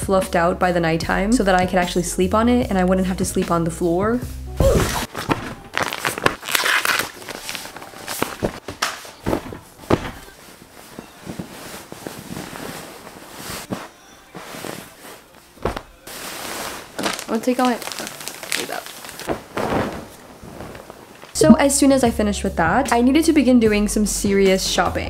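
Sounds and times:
fabric rustling: 5.0 - 21.4
plastic packaging crinkling: 5.1 - 13.7, 16.2 - 21.4.

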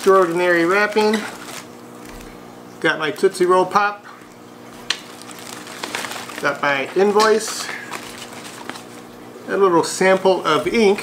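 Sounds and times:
bubble wrap rustling and crackling: 0.0 - 2.4, 4.7 - 9.2.

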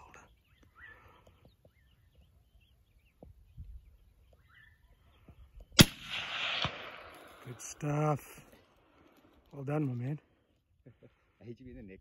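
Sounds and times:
rifle shot: 5.8 - 7.6.

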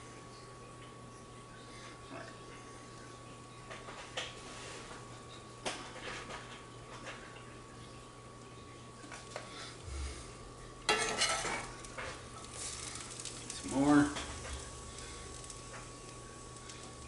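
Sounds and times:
metal spoon scraping skillet: 10.9 - 11.7.

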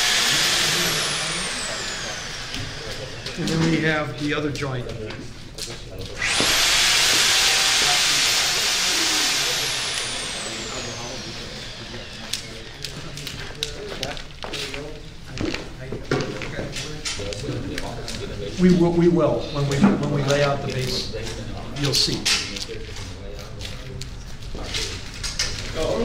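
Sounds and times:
high-speed motor whining: 0.0 - 4.3, 6.1 - 13.8.

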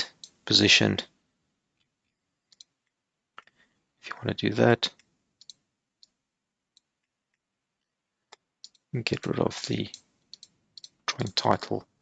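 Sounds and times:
computer mouse buttons clicking: 5.4 - 6.2.

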